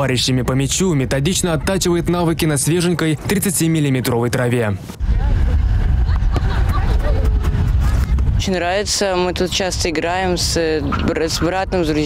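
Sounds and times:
steady low rumble: 4.9 - 12.0.

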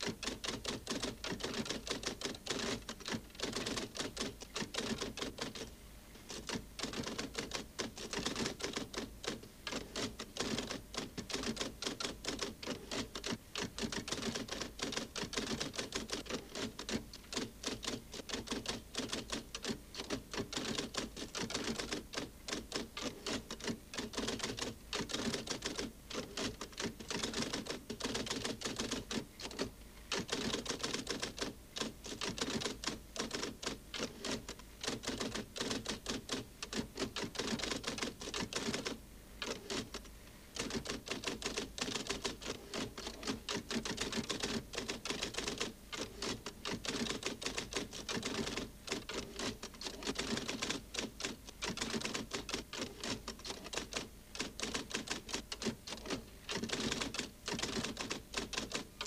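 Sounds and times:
typewriter typing: 0.0 - 5.7, 6.3 - 59.0.

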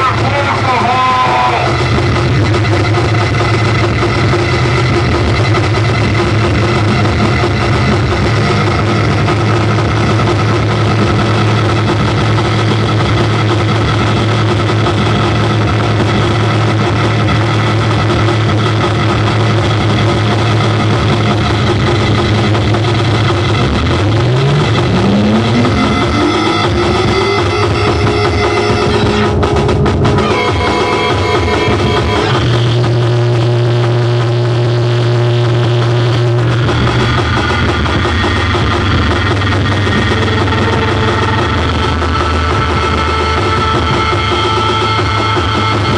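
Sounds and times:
dense wash of noise: 0.0 - 45.9
distorted noise wall: 0.0 - 45.9
held tones: 0.0 - 45.9
steady low drone: 0.0 - 45.9.

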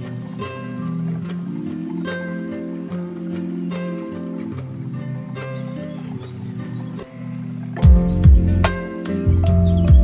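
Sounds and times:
lo-fi hip hop music: 0.0 - 10.0.

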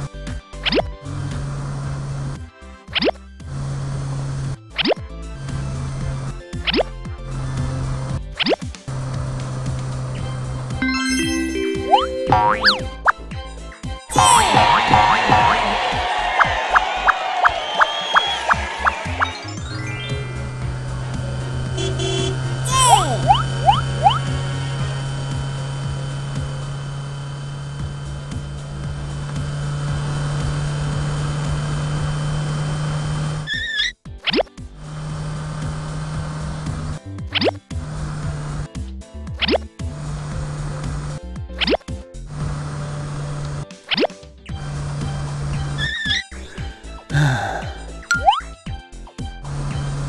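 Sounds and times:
background music: 10.8 - 23.5, 45.3 - 49.1
gliding whistles: 16.4 - 19.6.

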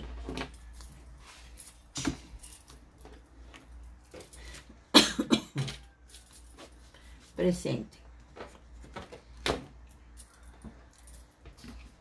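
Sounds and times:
woman coughing: 4.9 - 5.8.

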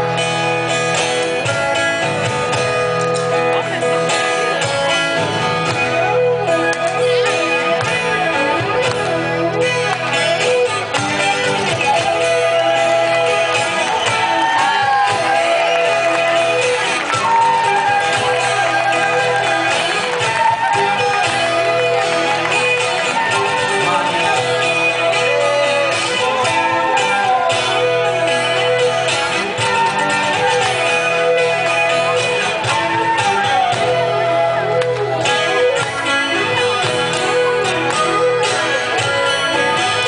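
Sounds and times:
guitar playing held notes: 0.0 - 40.0
live band music: 0.0 - 40.0.

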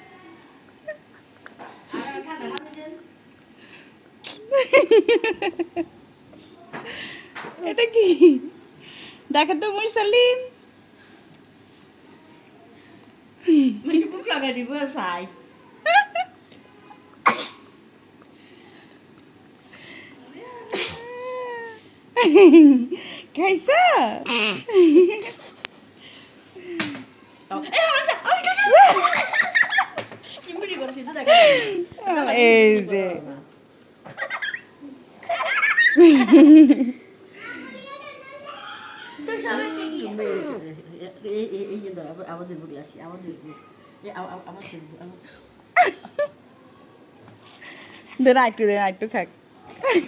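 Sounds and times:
soft voices: 18.2 - 22.2
baby vocal burst: 20.7 - 21.8.

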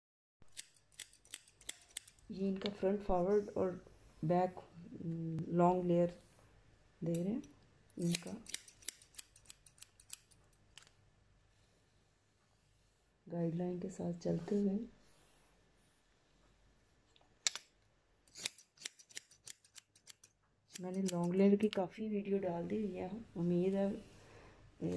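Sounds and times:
scissors snipping hair: 0.4 - 3.4, 7.0 - 10.9, 18.3 - 21.9.

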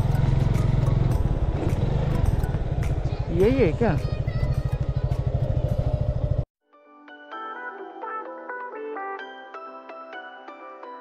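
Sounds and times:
motorcycle engine running: 0.0 - 6.5.

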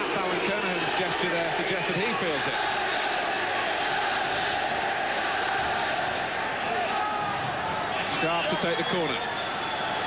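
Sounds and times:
crowd chanting: 0.0 - 7.9
stadium crowd voices: 0.0 - 10.0.

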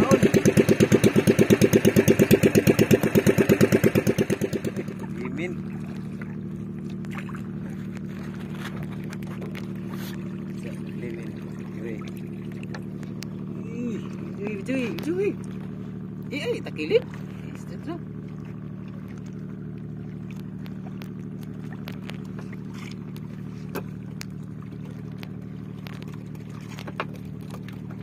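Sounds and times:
boat engine droning: 0.0 - 28.0
voices: 10.6 - 12.1.

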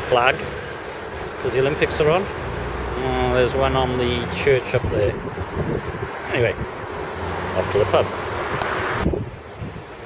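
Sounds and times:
low traffic rumble: 0.0 - 10.0
vehicle passing: 0.4 - 10.0
wind on microphone: 4.8 - 7.0, 8.4 - 10.0.

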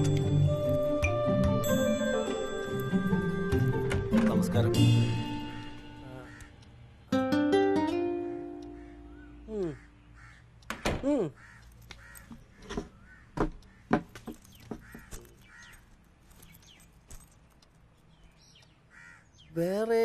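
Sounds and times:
crows cawing: 6.0 - 6.7, 8.6 - 15.9, 18.8 - 19.5
sharp clicks and knocks: 11.6 - 15.8.

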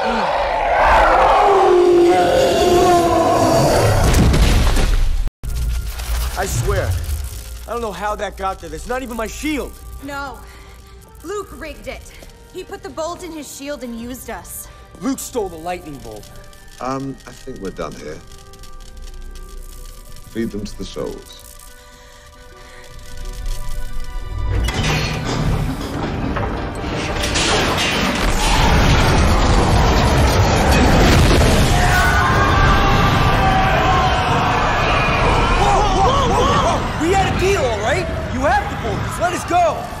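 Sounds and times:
crackling electric lightning bolt: 3.6 - 12.7, 15.6 - 25.4, 27.2 - 38.0
low electric rumble with crackle: 5.4 - 13.1
dramatic background music: 5.4 - 40.0
crashing blasts: 25.0 - 38.4.

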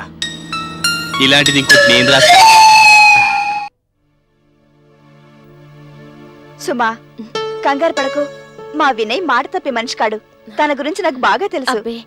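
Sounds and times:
background score music: 0.0 - 12.0.

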